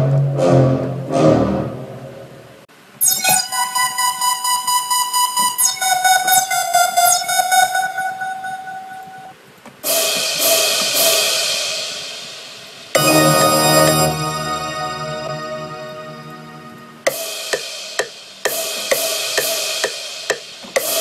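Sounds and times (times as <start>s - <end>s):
pulsing synth tone: 3.0s - 9.3s, 13.0s - 17.1s
bright hissy synth hits: 9.8s - 21.0s.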